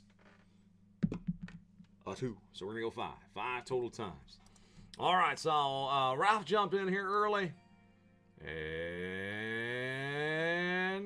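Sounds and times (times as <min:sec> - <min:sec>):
man drawing out a long vowel: 0:08.3 - 0:11.0.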